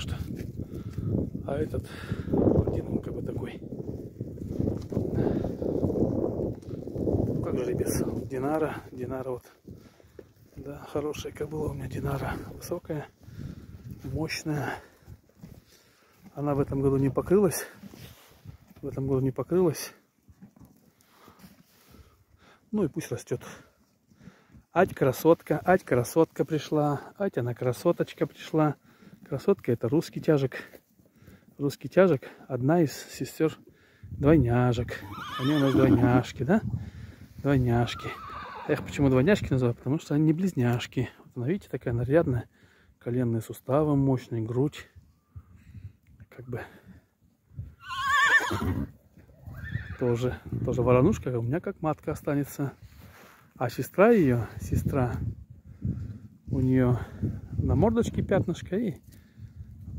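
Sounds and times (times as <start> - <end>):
horses shifting with soft knocks: 2.4 - 32.2
horse whinnying: 34.9 - 36.2, 37.8 - 39.0, 47.8 - 50.1.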